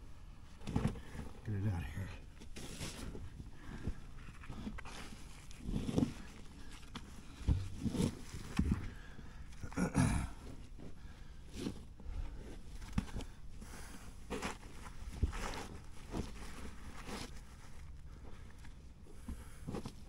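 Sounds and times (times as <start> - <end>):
rock scraping and thumping on soil: 2.4 - 8.9
effortful grunts: 9.5 - 10.6.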